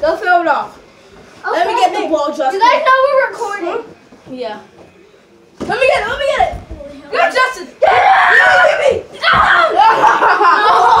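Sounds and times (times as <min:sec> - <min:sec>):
boys shouting and screaming: 0:07.1 - 0:11.0.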